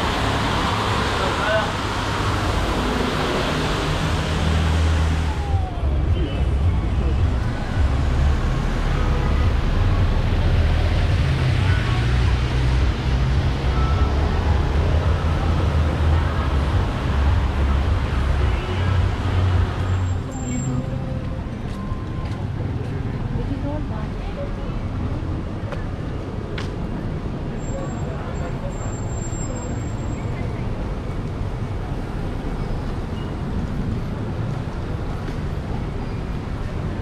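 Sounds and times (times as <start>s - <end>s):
traffic noise: 0.0s - 37.0s
people's voices: 5.1s - 30.2s.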